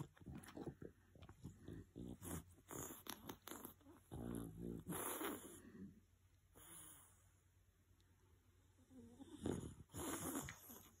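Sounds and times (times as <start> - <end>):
dog snoring: 1.4 - 5.9, 8.8 - 11.0.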